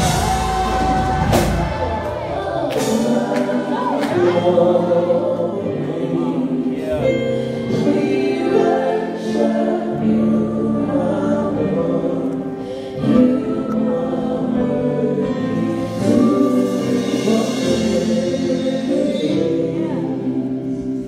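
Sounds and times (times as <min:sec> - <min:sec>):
singers in harmony: 0:00.0 - 0:21.0.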